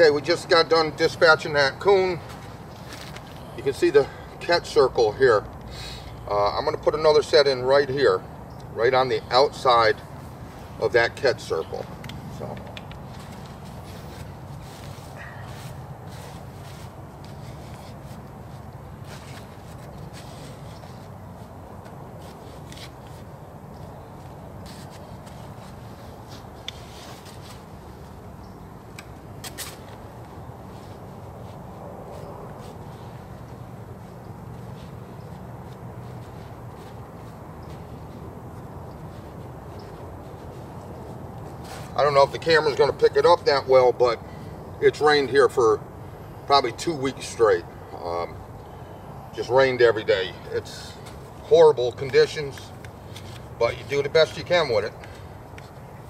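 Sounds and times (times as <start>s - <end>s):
low background noise: 0.0s - 56.0s.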